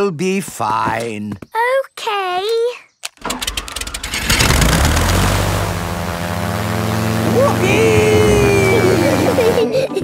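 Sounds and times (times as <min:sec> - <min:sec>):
toy aeroplane engine buzzing: 0:03.4 - 0:10.0.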